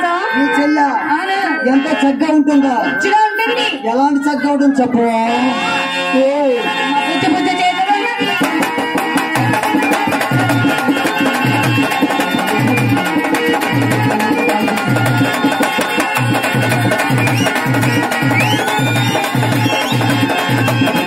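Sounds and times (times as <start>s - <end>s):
hand drums fast rhythm: 8.3s - 21.0s.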